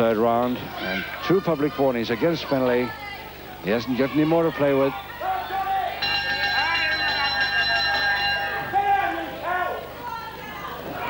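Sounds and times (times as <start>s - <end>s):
crowd shouting: 0.6s - 11.0s
ring bell ringing: 6.0s - 8.9s.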